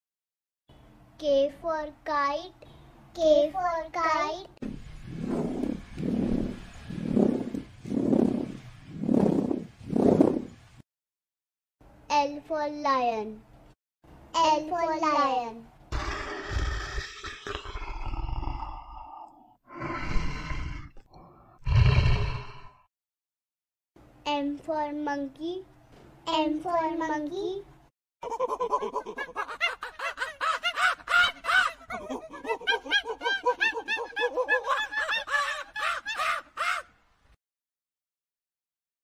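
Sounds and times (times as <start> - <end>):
lion roaring: 15.9 - 21.0, 21.6 - 22.8.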